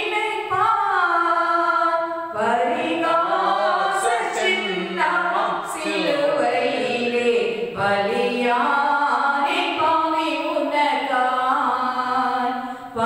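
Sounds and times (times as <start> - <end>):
woman singing a hymn: 0.0 - 13.0
singer breathing: 12.6 - 13.0.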